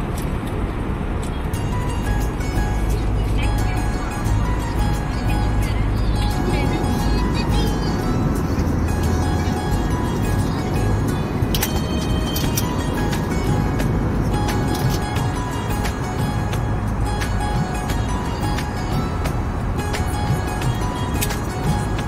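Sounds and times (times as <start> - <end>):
airliner cabin drone: 0.0 - 22.0
faint music: 0.5 - 22.0.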